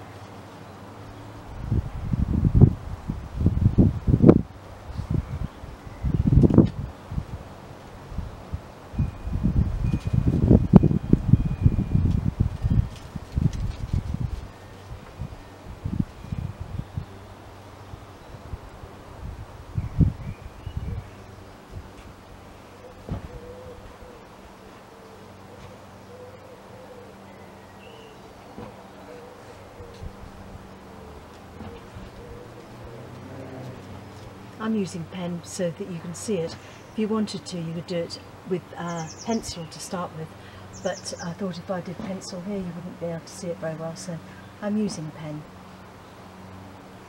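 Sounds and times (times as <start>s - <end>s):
wind buffeting microphone: 1.2s - 24.0s
bird hooting: 22.6s - 30.1s, 30.9s - 34.0s.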